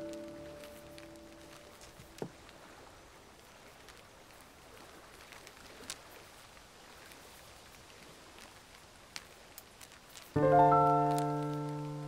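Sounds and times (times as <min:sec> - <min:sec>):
faint rain hiss: 0:00.0 - 0:12.0
drip-like ticks: 0:03.3 - 0:10.4.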